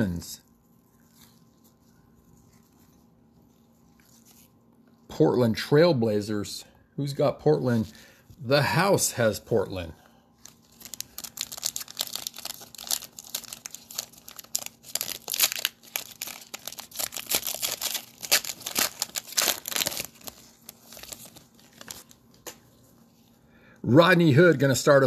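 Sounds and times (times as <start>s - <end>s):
foil wrapper tearing and crinkling: 10.4s - 22.5s.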